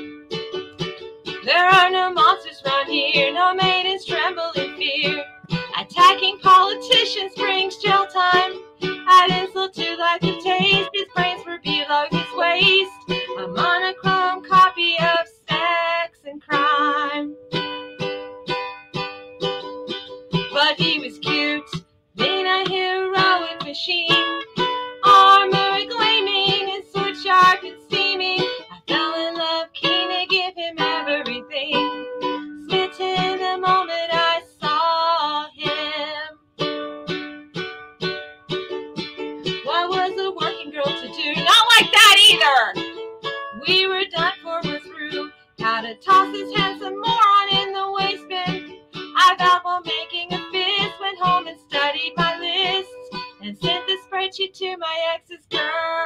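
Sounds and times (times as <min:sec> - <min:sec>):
plucked lute strumming: 0:00.0 - 0:56.0
woman singing: 0:01.4 - 0:17.3, 0:20.4 - 0:36.4, 0:39.5 - 0:42.9, 0:43.5 - 0:56.0.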